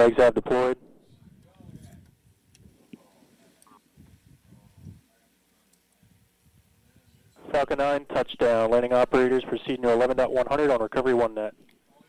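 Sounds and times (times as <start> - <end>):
faint background voices: 0.6 - 8.1, 11.4 - 12.0.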